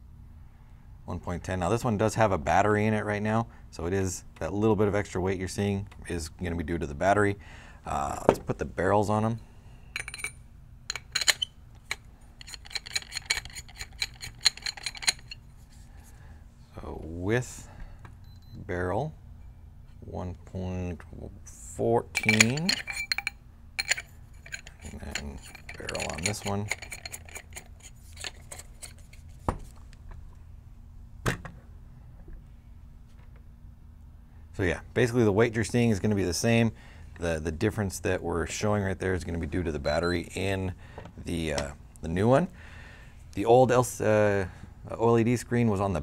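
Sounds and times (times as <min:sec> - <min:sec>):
metallic clicks of barrel screwing: 0:10.0 - 0:15.4, 0:22.2 - 0:29.4.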